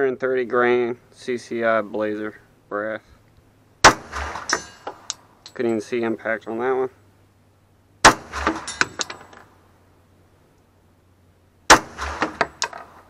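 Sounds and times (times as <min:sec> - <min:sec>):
pistol shots: 0:03.8 - 0:05.1, 0:08.0 - 0:09.4, 0:11.7 - 0:12.8
faint cracks and clinks: 0:04.4 - 0:06.6, 0:08.4 - 0:09.5, 0:12.2 - 0:13.0.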